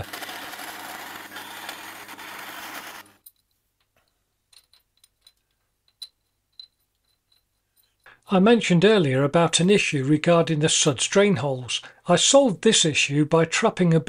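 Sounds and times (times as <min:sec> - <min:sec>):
bandsaw cutting metal: 0:00.0 - 0:03.2.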